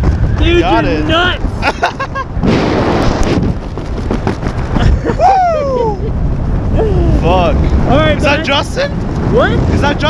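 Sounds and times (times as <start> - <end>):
wind buffeting microphone: 0.0 - 10.0
person yelling: 5.1 - 6.1, 6.7 - 7.2.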